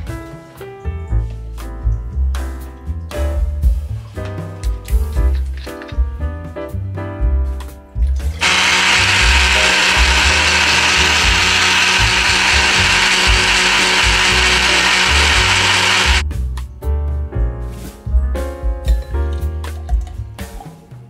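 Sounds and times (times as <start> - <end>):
countertop blender running: 8.4 - 16.2.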